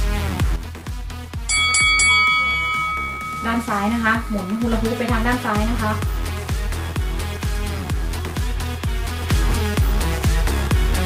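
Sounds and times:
timer bell ringing: 0:01.4 - 0:06.8.

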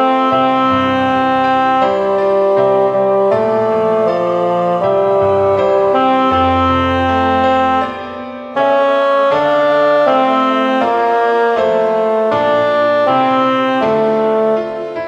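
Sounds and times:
piano accompaniment: 0:00.0 - 0:15.0
reedy wind instrument melody: 0:00.0 - 0:15.0.

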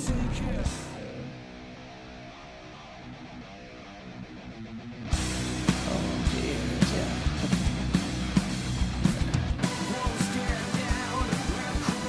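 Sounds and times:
electric guitar sustained notes: 0:00.0 - 0:12.0
live rock band: 0:00.0 - 0:12.0.

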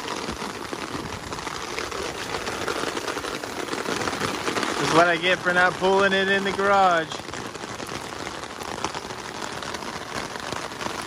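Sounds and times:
rain on an umbrella: 0:00.0 - 0:11.0.

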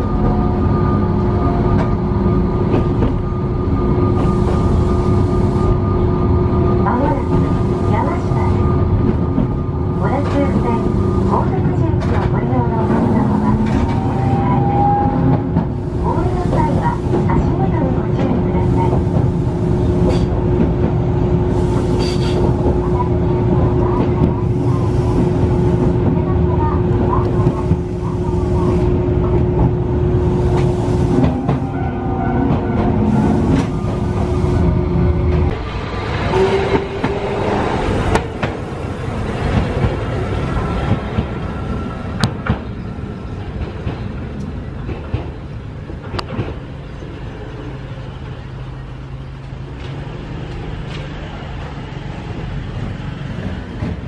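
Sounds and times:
tram running on rails: 0:00.0 - 0:54.0.

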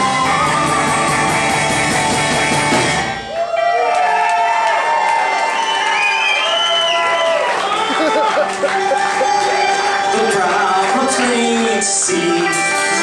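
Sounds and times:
live rock band playing: 0:00.0 - 0:03.3, 0:07.6 - 0:13.0.

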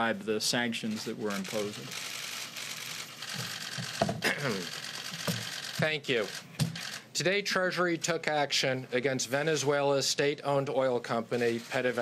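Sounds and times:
camera shutters clicking: 0:01.3 - 0:07.1
person speaking: 0:04.2 - 0:04.8.

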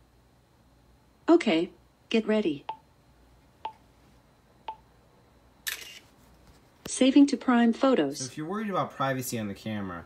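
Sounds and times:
camera shutter sound: 0:05.6 - 0:06.1.

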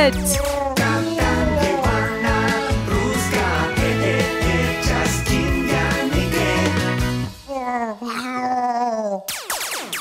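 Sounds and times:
comedic theme song: 0:00.0 - 0:07.5.

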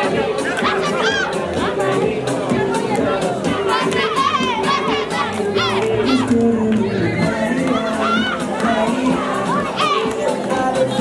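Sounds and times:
children shouting: 0:00.5 - 0:01.9, 0:03.5 - 0:10.4.

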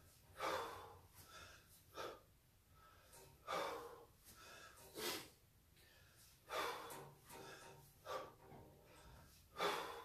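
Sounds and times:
man breathing hard: 0:00.0 - 0:10.0.

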